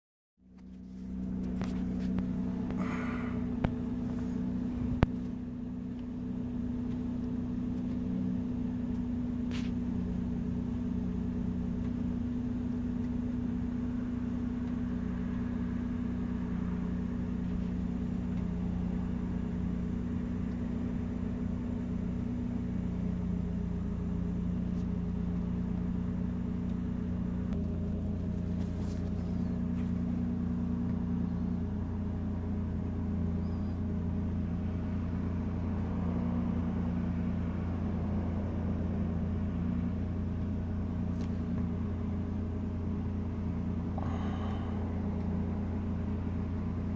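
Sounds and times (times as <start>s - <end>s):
low mechanical hum: 0.4s - 46.9s.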